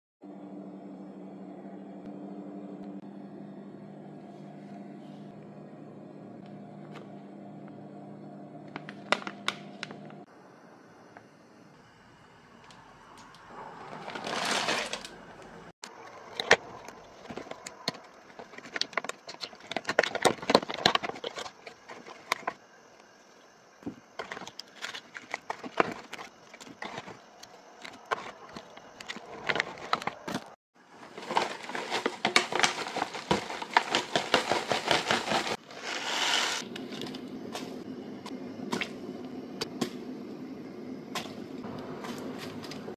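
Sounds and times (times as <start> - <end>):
steady low hum: 0.2 - 14.2, 36.6 - 42.9
plastic bag crinkling: 14.0 - 15.2, 30.9 - 36.6
dried herbs pouring into metal pot: 31.1 - 36.6.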